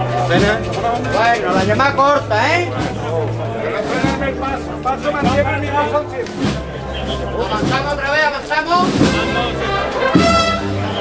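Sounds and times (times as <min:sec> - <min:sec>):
faint brass band music: 0:00.0 - 0:11.0
people talking: 0:00.0 - 0:11.0.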